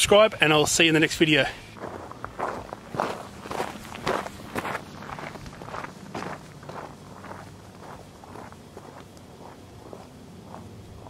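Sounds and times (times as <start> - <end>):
footsteps crunching on gravel: 1.7 - 11.0.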